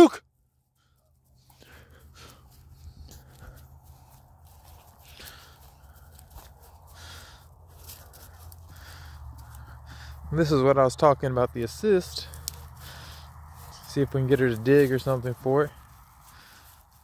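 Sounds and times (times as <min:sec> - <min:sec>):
footsteps through grass: 0:01.1 - 0:17.0.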